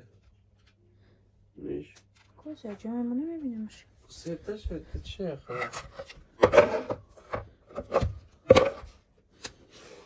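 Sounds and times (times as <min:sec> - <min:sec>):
boards scraping and knocking: 0:05.6 - 0:09.0.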